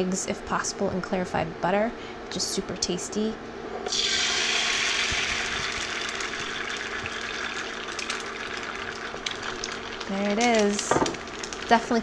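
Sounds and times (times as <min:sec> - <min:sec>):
egg sizzling in a frying pan: 0:03.8 - 0:12.0.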